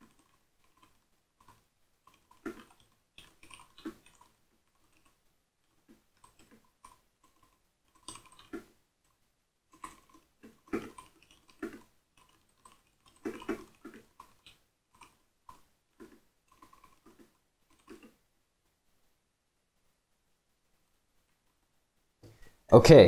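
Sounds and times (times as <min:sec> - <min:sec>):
typing on computer keyboard: 0:00.0 - 0:05.2, 0:06.1 - 0:08.7, 0:09.7 - 0:18.1.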